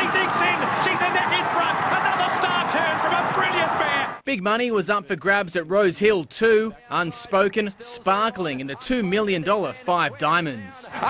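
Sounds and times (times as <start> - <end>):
crowd cheering: 0.0 - 4.2
race commentator calling excitedly: 0.0 - 11.0.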